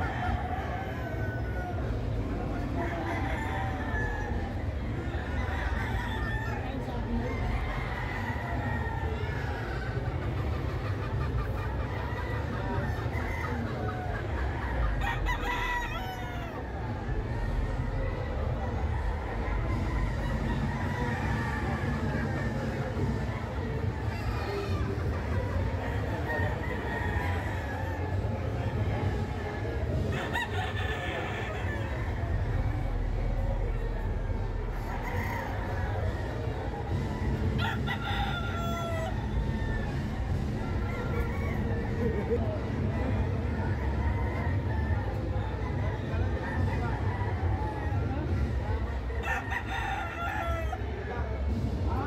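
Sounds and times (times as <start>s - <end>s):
rooster crowing: 37.6s - 40.0s.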